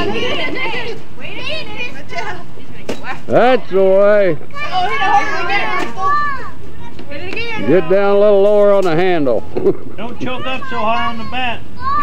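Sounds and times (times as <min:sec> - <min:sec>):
voices at a party: 0:00.0 - 0:12.0.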